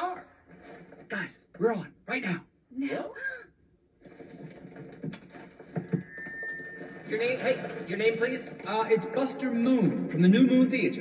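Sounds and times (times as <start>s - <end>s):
microphone feedback squeal: 5.1s - 7.3s.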